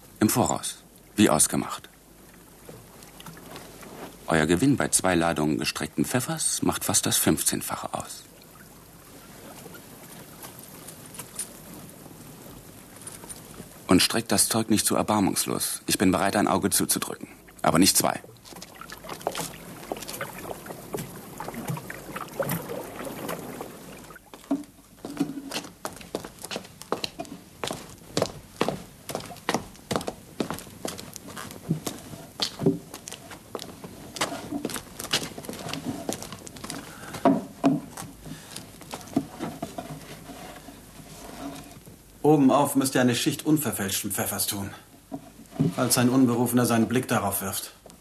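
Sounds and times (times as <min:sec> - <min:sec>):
footsteps: 0:18.2 - 0:41.6
wooden knocks and thuds: 0:31.6 - 0:33.0, 0:34.2 - 0:38.2.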